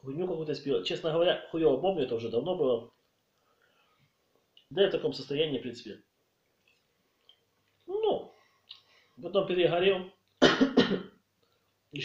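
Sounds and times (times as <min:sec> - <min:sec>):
man coughing: 0:10.4 - 0:11.2.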